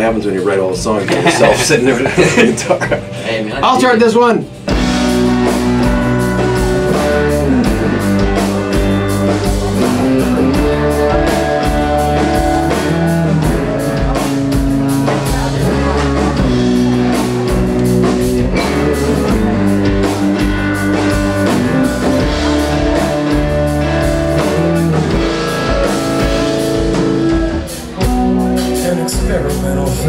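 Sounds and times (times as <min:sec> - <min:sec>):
drum kit: 0:00.0 - 0:30.0
rock band playing: 0:00.0 - 0:30.0
resonator guitar: 0:02.9 - 0:30.0.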